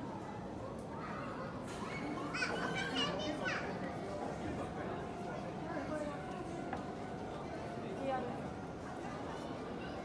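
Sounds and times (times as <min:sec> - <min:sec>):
echoing murmur of voices: 0:00.0 - 0:10.0.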